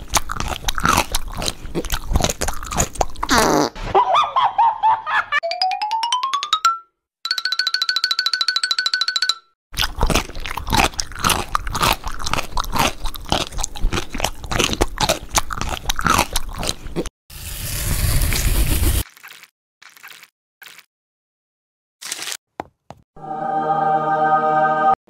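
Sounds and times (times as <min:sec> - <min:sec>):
chocolate wafer crunching: 0:00.0 - 0:03.3, 0:09.8 - 0:17.0.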